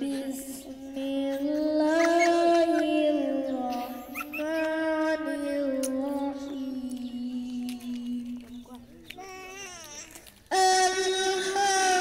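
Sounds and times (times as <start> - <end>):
boy chanting long melodic notes: 0.0 - 8.8, 10.5 - 12.0.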